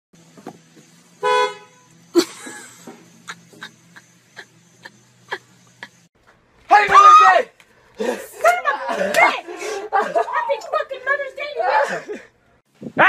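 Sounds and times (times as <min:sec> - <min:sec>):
car horn blast: 0:01.2 - 0:02.0.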